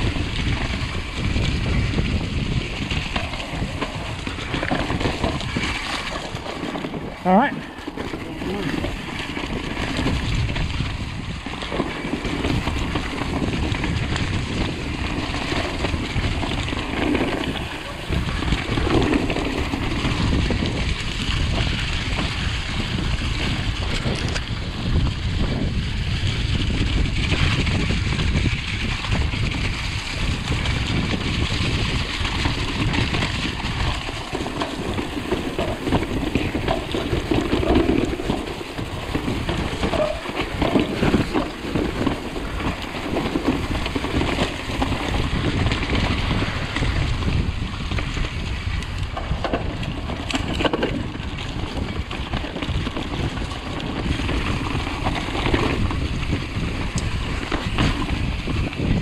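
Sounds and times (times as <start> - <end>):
tyres rushing through mud: 0.0 - 25.0, 25.6 - 59.0
bike rattling over bumps: 0.0 - 59.0
wind buffeting microphone: 0.0 - 59.0.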